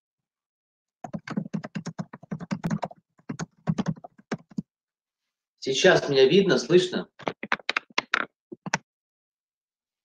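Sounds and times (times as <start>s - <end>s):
fast typing on keyboard: 1.0s - 4.6s, 7.2s - 8.8s.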